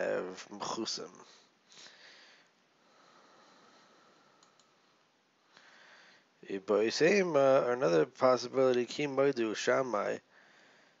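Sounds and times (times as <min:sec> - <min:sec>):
man speaking: 0:00.0 - 0:01.4, 0:06.4 - 0:10.3
breath: 0:01.3 - 0:06.3, 0:10.3 - 0:11.0
computer mouse clicks: 0:04.4 - 0:04.8.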